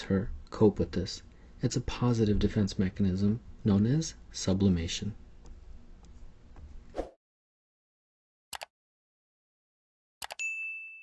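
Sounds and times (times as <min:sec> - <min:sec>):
notification bell ding: 0:10.3 - 0:11.0.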